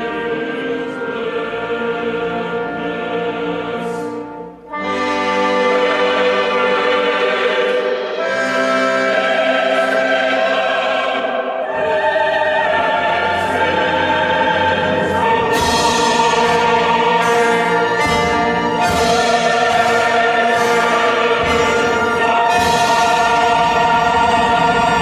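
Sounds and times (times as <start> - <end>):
choir singing held chords: 0.0 - 25.0
orchestra playing: 0.0 - 25.0.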